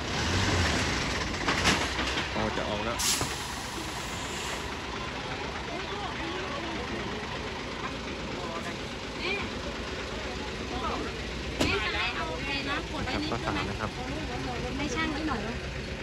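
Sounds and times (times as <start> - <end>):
diesel truck engine running: 0.0 - 16.0
faint voices: 5.5 - 15.6.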